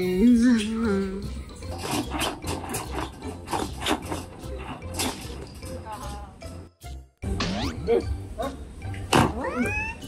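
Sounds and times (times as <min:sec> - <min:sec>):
light background music: 0:00.0 - 0:10.0
cat meow sound effect: 0:09.3 - 0:10.0.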